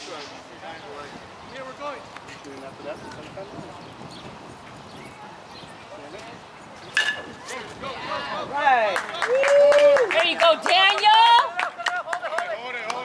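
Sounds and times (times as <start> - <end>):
spectators chatting: 0.0 - 13.0
metal bat hitting ball: 7.0 - 7.3.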